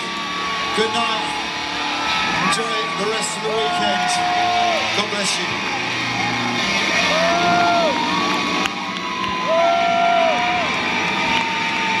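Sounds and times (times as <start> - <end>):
crowd cheering and applauding: 0.0 - 12.0
long whoops: 1.2 - 4.9, 6.2 - 12.0.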